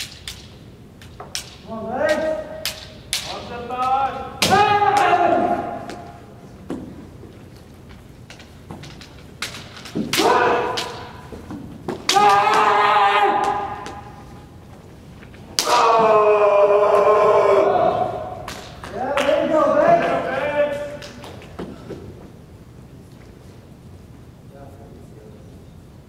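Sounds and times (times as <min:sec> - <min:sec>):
bamboo swords clacking: 0:00.0 - 0:05.1, 0:07.8 - 0:14.3, 0:15.5 - 0:16.0
long held yells: 0:04.4 - 0:06.1, 0:10.1 - 0:11.2, 0:12.1 - 0:14.2, 0:15.6 - 0:18.5.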